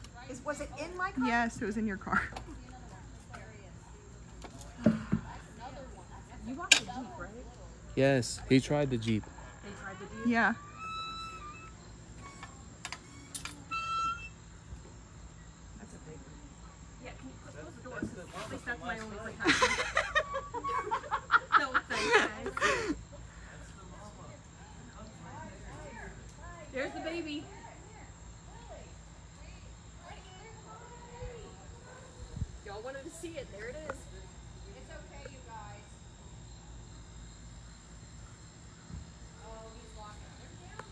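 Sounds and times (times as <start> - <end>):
crickets chirping: 0.0 - 40.9.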